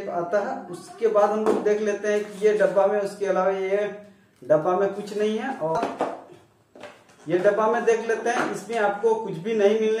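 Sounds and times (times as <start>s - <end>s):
man talking: 0.0s - 6.0s, 7.2s - 10.0s.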